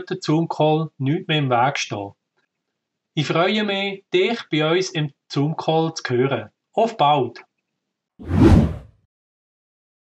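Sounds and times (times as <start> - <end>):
whoosh sound effect: 8.2 - 8.9.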